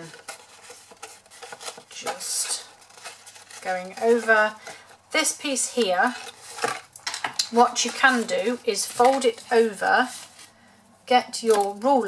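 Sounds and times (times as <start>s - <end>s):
card folding and crinkling: 0.0s - 10.7s.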